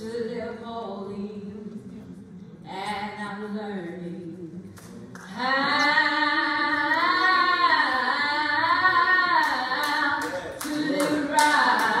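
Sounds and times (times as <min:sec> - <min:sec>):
person singing a church song: 0:03.9 - 0:12.0.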